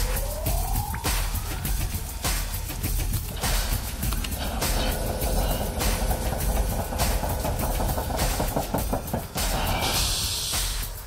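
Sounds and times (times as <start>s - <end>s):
large machine rumbling: 0.0s - 11.0s.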